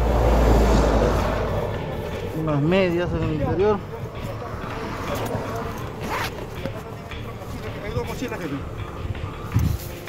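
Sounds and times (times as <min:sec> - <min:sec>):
clothes and bag handling: 0:04.0 - 0:08.2
zipper rasp: 0:05.9 - 0:06.6.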